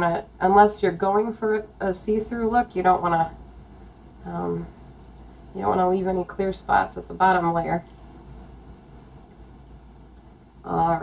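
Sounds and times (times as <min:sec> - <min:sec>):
low steady hum: 0:00.0 - 0:11.0
plastic bag rustling: 0:03.9 - 0:11.0.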